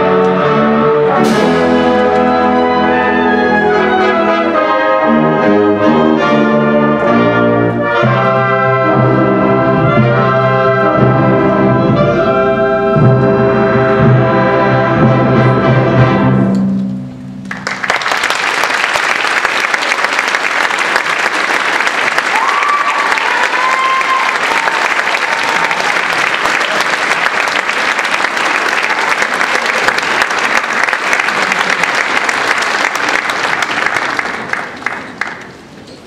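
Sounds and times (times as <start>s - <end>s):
audience applauding: 17.4s - 35.8s.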